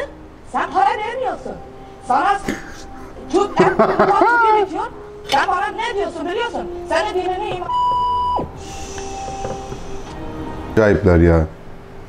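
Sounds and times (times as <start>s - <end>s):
quiet tones: 4.9s - 11.6s
electronic beep with downward slide: 7.7s - 9.5s
faint hiss: 8.6s - 10.7s.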